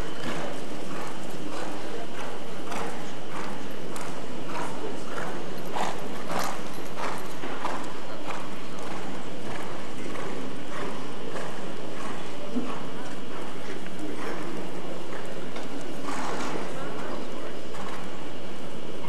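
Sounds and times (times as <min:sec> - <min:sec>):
hoofbeats on sand: 0:00.0 - 0:17.2.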